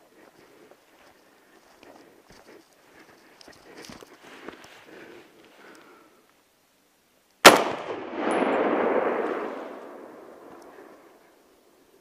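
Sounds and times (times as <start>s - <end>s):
rifle shot with echo: 7.4s - 11.2s.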